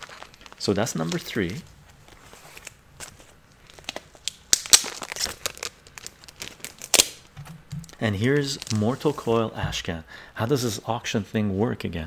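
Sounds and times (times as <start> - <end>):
comic book pages rustling: 0.0 - 4.2, 4.8 - 9.6.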